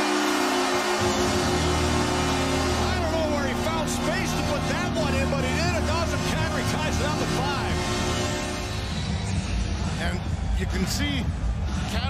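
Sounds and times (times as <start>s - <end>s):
goal horn sounding: 0.0s - 9.0s
deeper horn note: 0.0s - 9.1s
crowd cheering: 0.0s - 12.0s.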